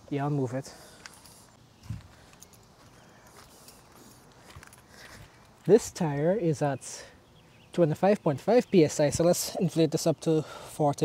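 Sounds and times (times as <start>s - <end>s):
outdoor background noise: 0.0s - 11.0s
footsteps on pavement: 0.8s - 5.7s.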